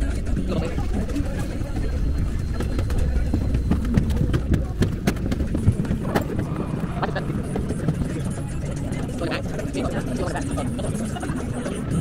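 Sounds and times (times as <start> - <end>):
boat engine rumbling: 0.0 - 11.1
people's voices: 0.0 - 12.0
people laughing: 6.2 - 8.4, 9.0 - 12.0.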